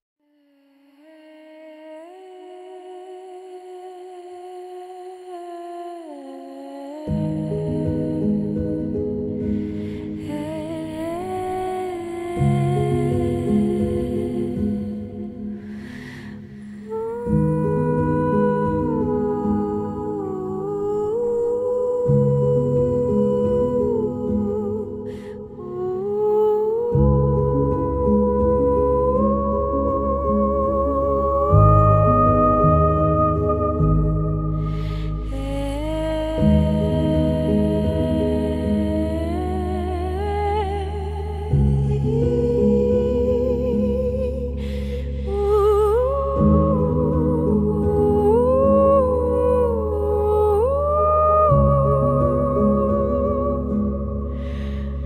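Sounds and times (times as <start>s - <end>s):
wordless hummed tone: 0.5s - 55.0s
deep bass: 26.9s - 55.0s.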